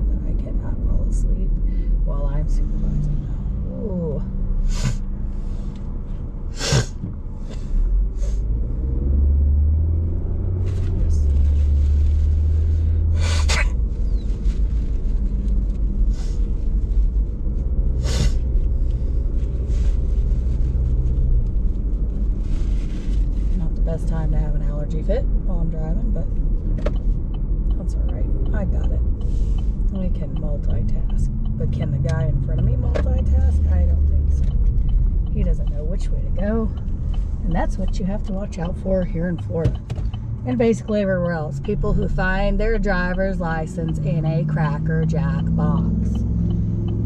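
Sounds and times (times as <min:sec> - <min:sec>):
car road rumble: 0:00.0 - 0:47.0.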